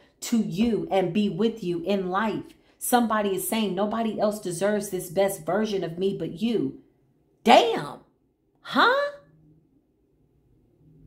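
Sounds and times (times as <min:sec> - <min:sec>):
woman saying huh: 0:08.6 - 0:09.3.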